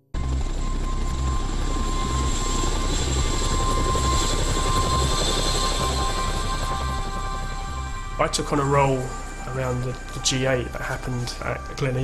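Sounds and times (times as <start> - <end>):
helicopter running: 0.0 - 12.0.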